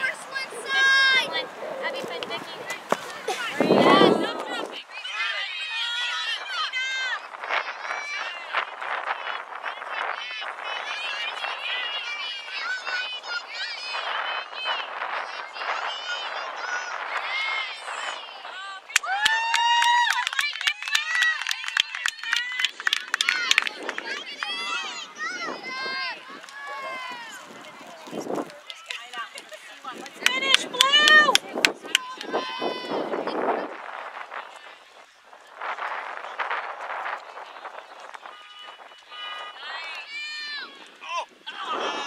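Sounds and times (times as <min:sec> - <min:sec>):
crowd shouting and cheering: 0:00.0 - 0:42.0
hand claps: 0:18.9 - 0:24.5, 0:28.6 - 0:32.3
high-pitched voices shouting: 0:30.2 - 0:33.4.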